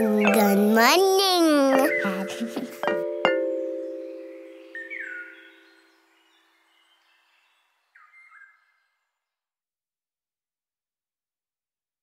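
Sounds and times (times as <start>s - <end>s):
bird chirping: 0.0s - 9.4s.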